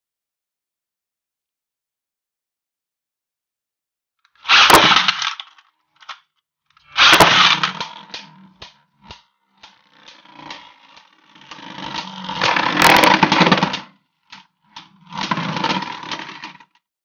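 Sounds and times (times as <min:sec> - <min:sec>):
spinning top rattling on launch: 0:04.4 - 0:06.2, 0:06.8 - 0:16.8
spinning tops scraping and clashing: 0:04.4 - 0:06.2, 0:06.8 - 0:16.7
clicks and knocks: 0:07.0 - 0:16.6.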